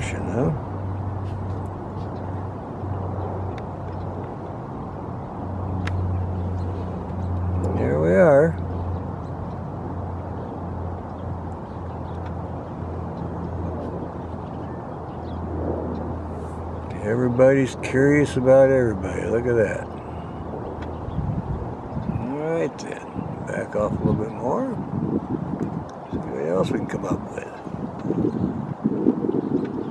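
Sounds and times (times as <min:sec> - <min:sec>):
distant road traffic rumble: 0:00.0 - 0:29.9.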